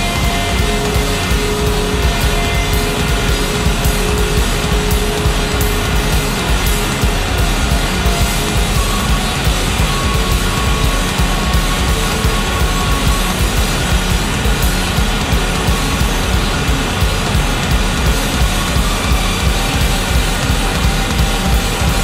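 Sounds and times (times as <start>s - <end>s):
distorted rock music: 0.0s - 22.0s
fast busy drumming: 0.0s - 22.0s.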